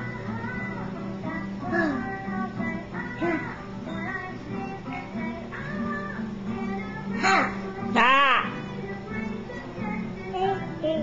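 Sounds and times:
children's music with high singing: 0.0s - 11.0s.

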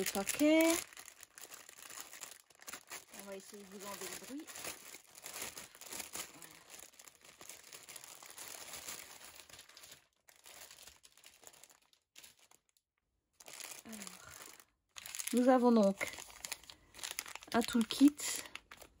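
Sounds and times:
plastic packaging crinkling: 0.0s - 12.8s, 13.4s - 19.0s.

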